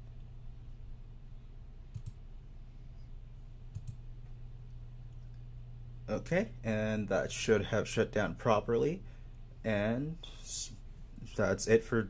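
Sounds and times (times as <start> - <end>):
steady low hum: 0.0 - 12.0
computer mouse clicks: 1.9 - 2.2, 3.7 - 4.0.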